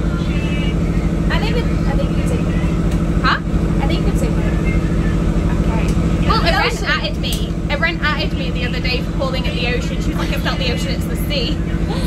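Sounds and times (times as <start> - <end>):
motorboat engine droning: 0.0 - 12.0.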